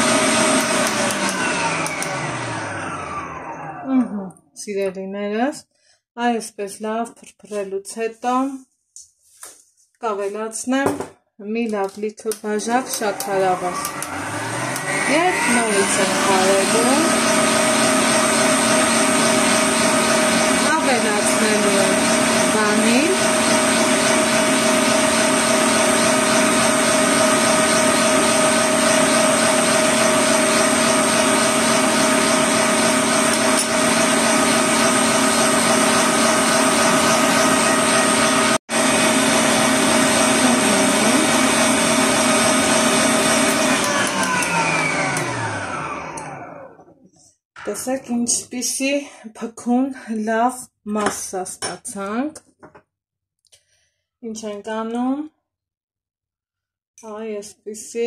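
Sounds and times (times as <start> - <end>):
stand mixer motor running: 0.0 - 3.8, 12.8 - 46.8.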